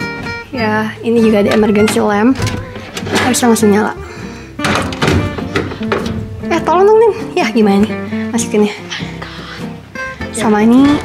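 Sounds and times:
background music: 0.0 - 11.0
plastic knocks: 4.6 - 6.5.

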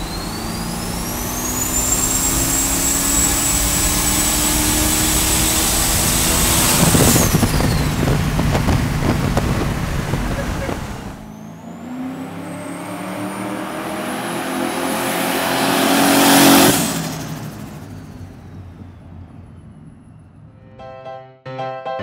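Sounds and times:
high turbo whistle: 0.0 - 8.2
truck engine accelerating past: 0.0 - 20.8.

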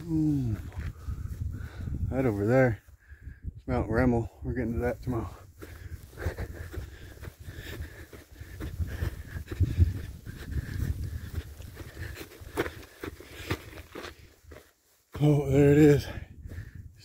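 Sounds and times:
wind on microphone: 0.0 - 2.4, 3.1 - 4.0, 5.5 - 12.8, 15.9 - 17.0
footsteps on grass and rock: 0.0 - 3.0, 3.8 - 16.9.

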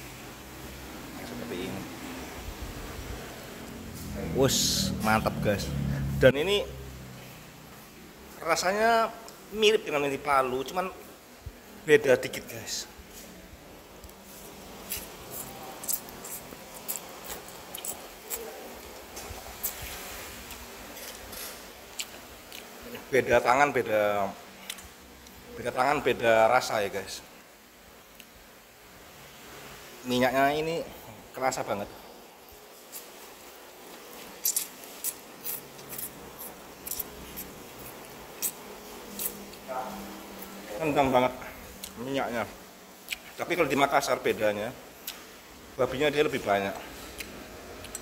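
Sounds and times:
faint room noise: 0.0 - 48.0
chewing noodles: 14.8 - 23.1, 32.9 - 39.7
mouth clicks and smacks: 15.0 - 18.5, 43.0 - 43.4.

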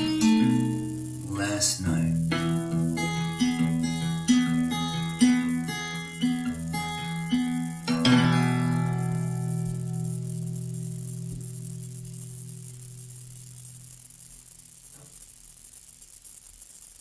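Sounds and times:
acoustic guitar chord ringing: 0.0 - 14.2.

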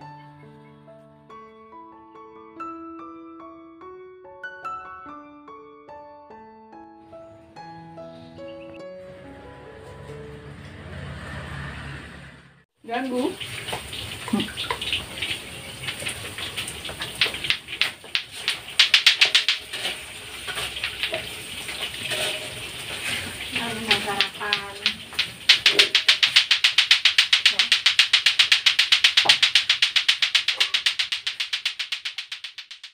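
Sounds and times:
plastic clacker balls clacking: 15.9 - 21.3, 23.5 - 32.9
person's voice: 23.5 - 25.0.

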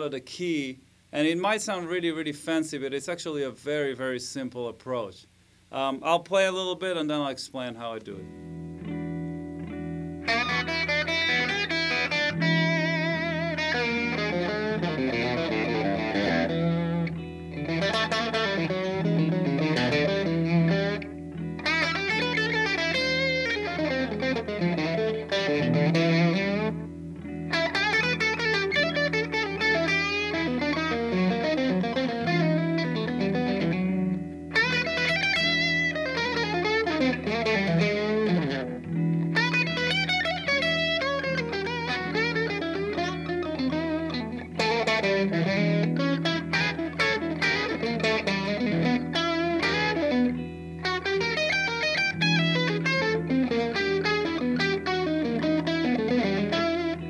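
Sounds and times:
electric guitar jazz lines: 0.0 - 57.0.

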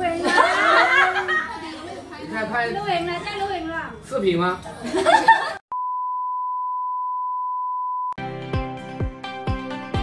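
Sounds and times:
steady test-tone beep: 5.7 - 8.2.

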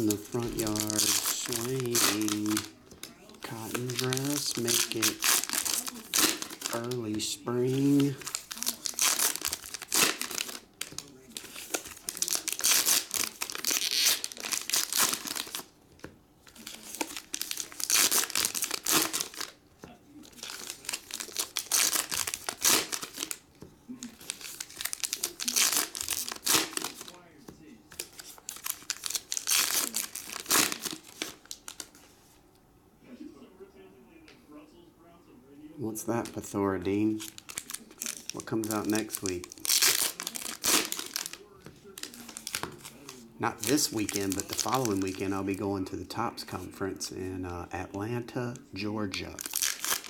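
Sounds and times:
card pack wrappers tearing and crinkling: 0.0 - 15.7, 16.4 - 19.6, 20.2 - 23.4, 24.0 - 27.2, 27.9 - 32.0, 36.1 - 45.8, 48.8 - 50.0.

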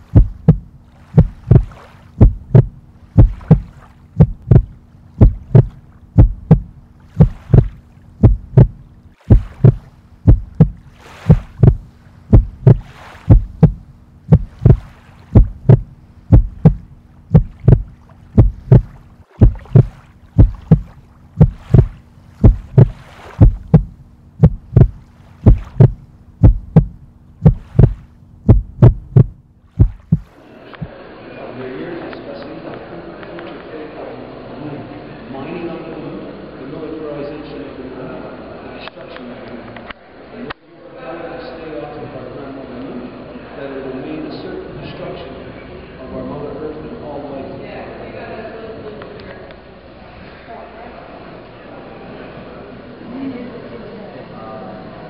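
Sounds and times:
deep thumping beat: 0.0 - 30.3
faint low hum: 0.0 - 55.0.

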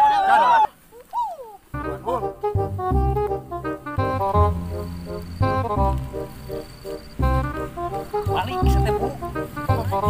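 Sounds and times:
music with pulsing bass beat: 1.8 - 10.0.

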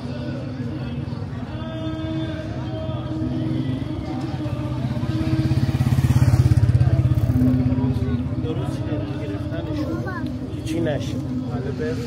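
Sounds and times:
motorcycle engine approaching: 3.6 - 9.8.

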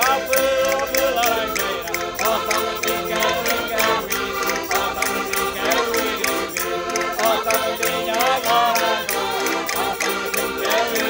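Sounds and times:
button accordions playing folk music: 0.0 - 11.0
group of voices singing: 0.0 - 11.0
steady clicking beat: 0.0 - 11.0.

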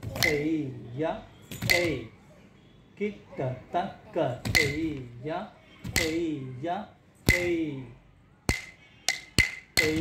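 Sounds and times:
wooden stick striking wooden block: 0.0 - 0.5, 1.6 - 2.0, 4.4 - 5.0, 5.9 - 6.3, 7.2 - 7.6, 8.5 - 10.0.

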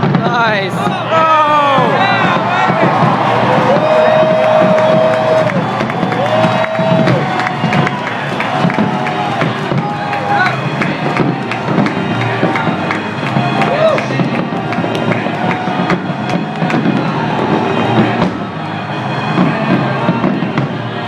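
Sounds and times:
crowd chatter: 0.0 - 21.0
crowd cheering: 0.0 - 21.0
fireworks bursting and crackling: 0.0 - 21.0
music playing: 0.0 - 21.0.

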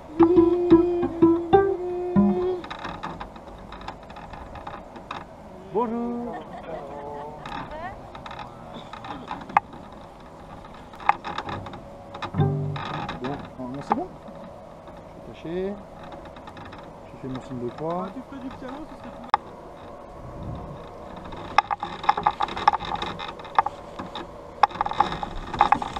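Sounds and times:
voices: 0.0 - 2.7, 5.4 - 9.9, 16.9 - 19.6
handling noise: 0.0 - 5.5, 6.5 - 25.9
plucked cello note: 0.2 - 2.6, 12.4 - 13.0.

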